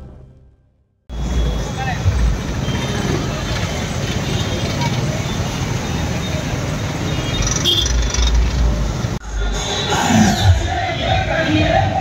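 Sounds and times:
crowd voices: 0:08.7 - 0:12.0.

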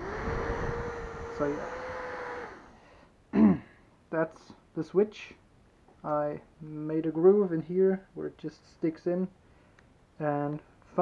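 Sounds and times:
small blower fan whining: 0:00.0 - 0:03.1.

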